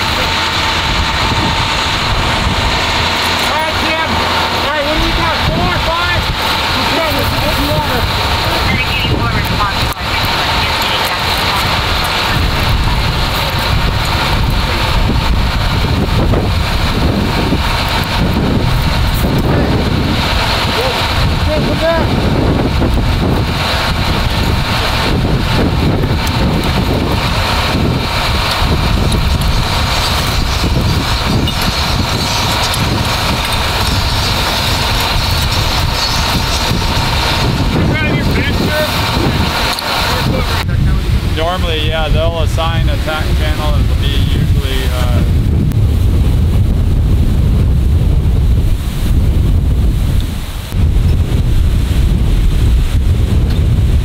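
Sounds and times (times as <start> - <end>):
indistinct voices: 0.0 - 45.3
engine idling: 0.0 - 54.0
wind buffeting microphone: 0.0 - 54.0.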